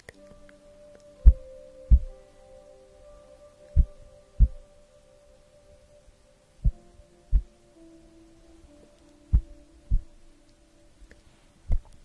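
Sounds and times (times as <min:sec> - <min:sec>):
faint steady held tones: 0:00.0 - 0:12.0.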